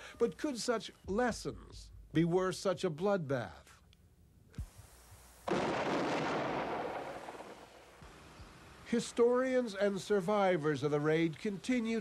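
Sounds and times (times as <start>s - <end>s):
gunfire volley with echo: 5.5s - 8.0s.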